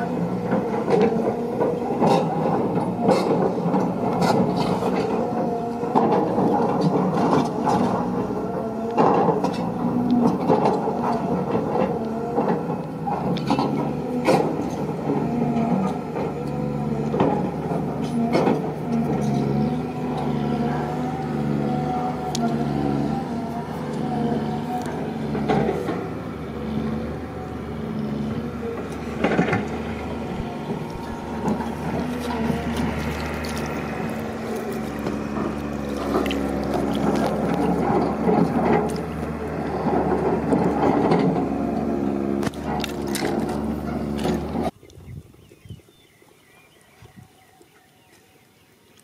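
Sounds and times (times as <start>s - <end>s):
motor hum: 0.0s - 44.8s
hands digging in dry soil: 29.0s - 40.1s.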